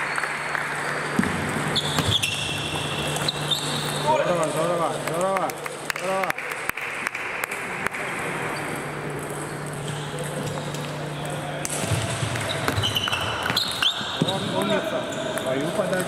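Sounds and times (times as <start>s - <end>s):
shoes squeaking on floor: 1.8s - 4.2s, 9.4s - 10.9s, 12.4s - 15.4s.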